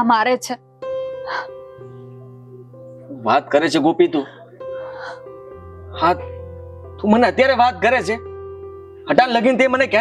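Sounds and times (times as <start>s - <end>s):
soft film score: 0.0s - 10.0s.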